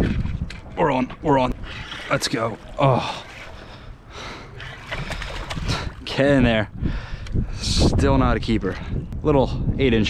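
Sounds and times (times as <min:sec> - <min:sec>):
fish splashing at water surface: 0:01.6 - 0:06.0.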